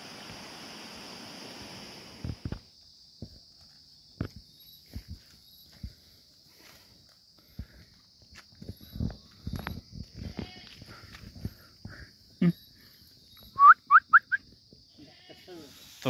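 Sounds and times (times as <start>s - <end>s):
high insect buzz: 0.0s - 16.0s
quick rising chirps: 13.2s - 14.5s
goat bleating: 15.0s - 15.5s.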